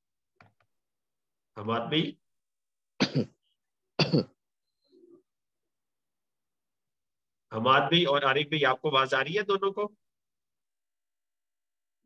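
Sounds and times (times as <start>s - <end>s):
person clearing throat: 3.0s - 4.4s.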